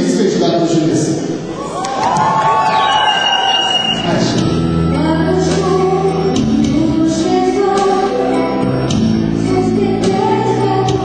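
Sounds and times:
audience cheering: 1.5 - 4.3.

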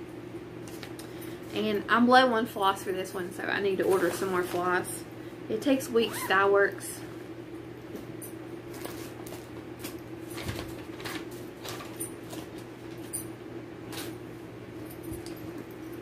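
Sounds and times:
bags rustling: 3.7 - 5.0, 8.6 - 14.2.

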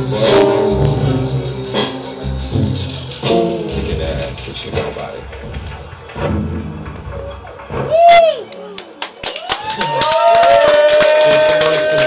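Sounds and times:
live band music: 0.0 - 8.4
crowd voices: 0.0 - 12.0.

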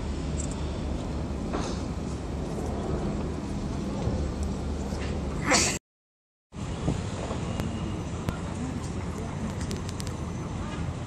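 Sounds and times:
traffic rumble: 0.0 - 5.8, 6.5 - 11.0.

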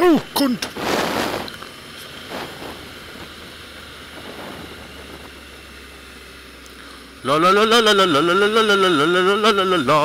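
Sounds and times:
motorcycle engine drone: 0.0 - 10.0
wind rushing over microphone: 0.7 - 1.6, 2.2 - 5.6.

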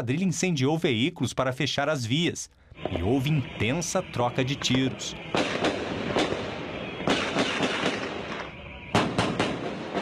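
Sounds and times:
gunshots: 5.2 - 10.0.

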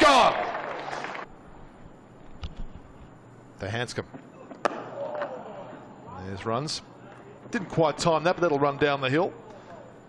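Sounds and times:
cricket bat striking ball: 4.4 - 5.5.

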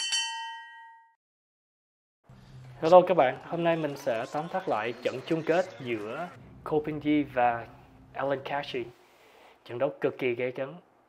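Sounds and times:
bright multi-tone ding: 0.0 - 1.2.

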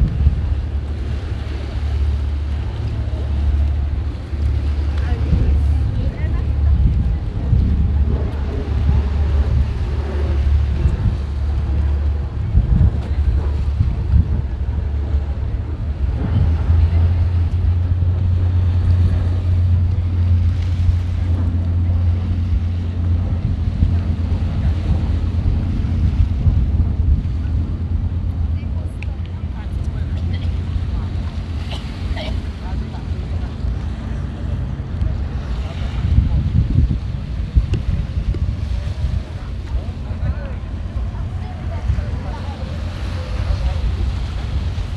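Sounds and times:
boat engine drone: 0.0 - 44.9
wind buffeting microphone: 0.0 - 44.9.

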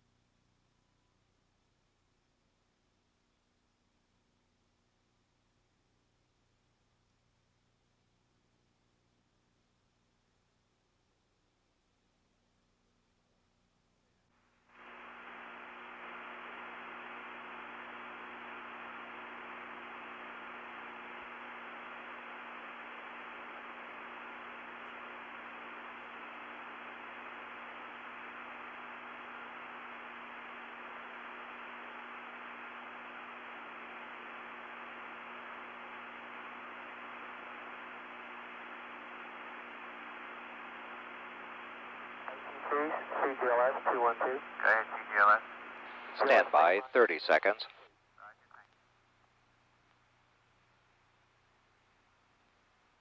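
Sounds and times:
radio static: 14.8 - 48.8.

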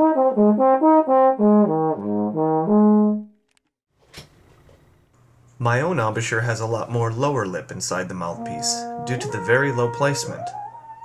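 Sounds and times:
trombone notes: 0.0 - 3.3, 8.0 - 11.0.

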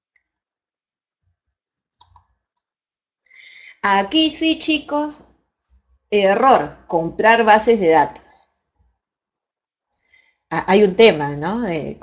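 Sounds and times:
computer mouse clicks: 2.0 - 2.6
woman speaking: 3.7 - 5.3, 6.1 - 8.6, 10.5 - 12.0.

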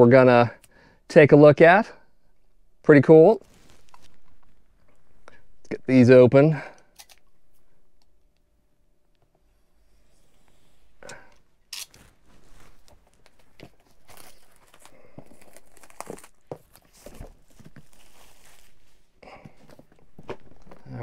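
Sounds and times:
plastic shrink-wrap tearing: 3.4 - 4.8, 11.7 - 17.0.

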